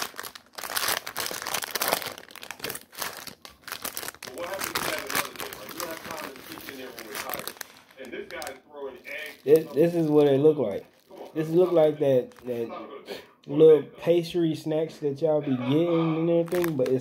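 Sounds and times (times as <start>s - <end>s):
plastic wrapper crinkling: 0.0s - 12.6s, 16.0s - 17.0s.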